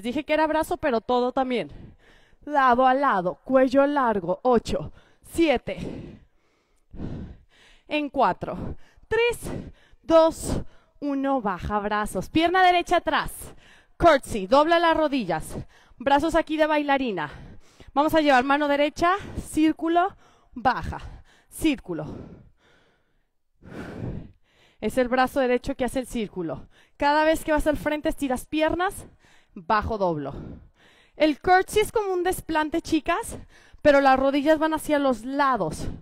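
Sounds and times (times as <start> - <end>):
woman breathing: 1.6 - 2.5, 4.9 - 11.0, 13.4 - 14.0, 15.5 - 16.0, 17.2 - 18.0, 20.1 - 24.9, 26.6 - 27.0, 29.0 - 31.3, 33.3 - 33.9.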